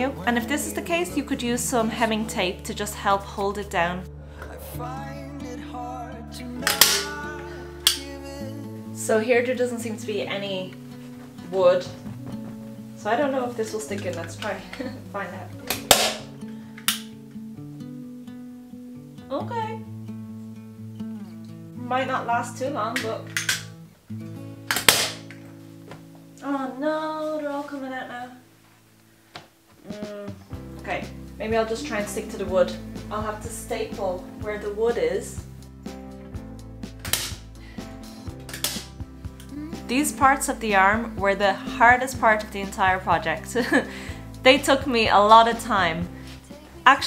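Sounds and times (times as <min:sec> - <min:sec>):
instrumental music: 0:00.0 - 0:27.1, 0:29.8 - 0:47.0
staple gun snap: 0:06.6 - 0:07.1, 0:07.8 - 0:08.0, 0:15.7 - 0:17.1, 0:23.0 - 0:23.7, 0:24.7 - 0:25.3, 0:37.0 - 0:37.4, 0:38.5 - 0:38.9.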